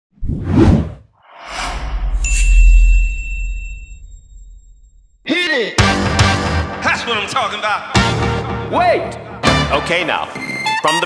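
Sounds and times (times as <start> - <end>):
whoosh transition effects: 0.2 - 5.2
low rumble: 1.4 - 5.3.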